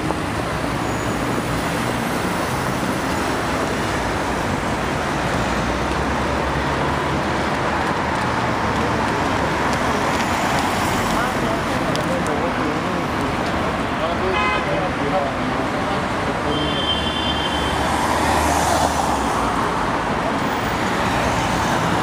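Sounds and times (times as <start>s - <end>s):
car engines and tyre noise: 0.0s - 22.0s.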